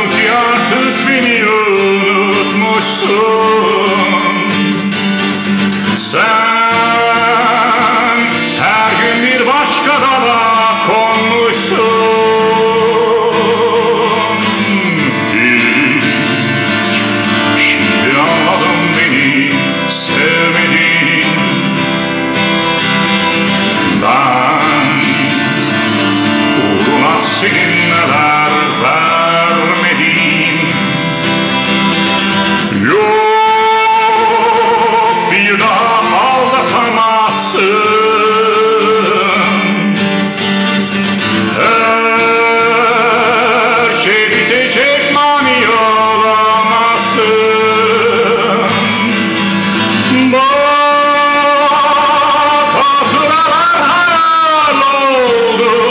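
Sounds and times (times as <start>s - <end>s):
man singing: 0.0s - 55.9s
strummed acoustic guitar: 0.0s - 55.9s.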